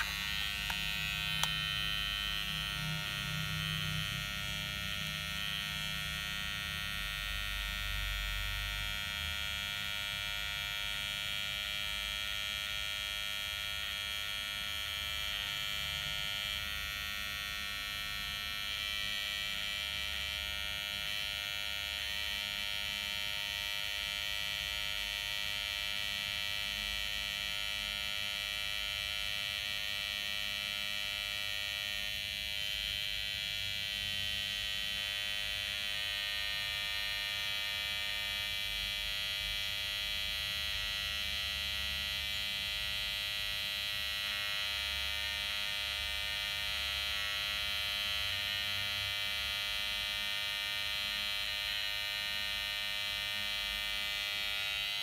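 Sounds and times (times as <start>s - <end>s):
hair clipper motor buzzing: 0.0s - 55.0s.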